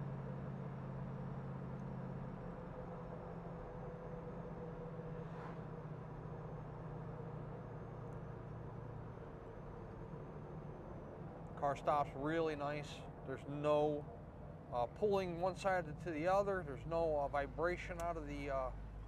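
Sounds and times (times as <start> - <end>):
road noise inside car: 0.0 - 19.0.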